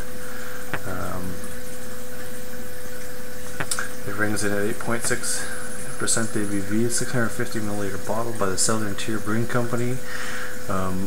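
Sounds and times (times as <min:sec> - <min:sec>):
faint hum: 0:00.0 - 0:11.0
steady background hiss: 0:00.0 - 0:11.0.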